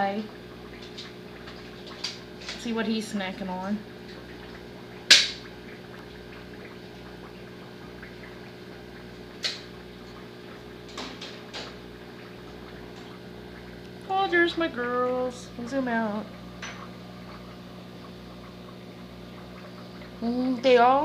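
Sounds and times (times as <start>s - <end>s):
water pump humming: 0.0s - 21.0s.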